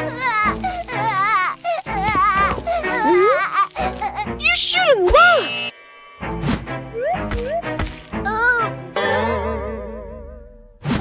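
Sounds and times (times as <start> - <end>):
cartoon child crying: 0.0 - 5.6, 8.2 - 8.8
background music: 0.0 - 11.0.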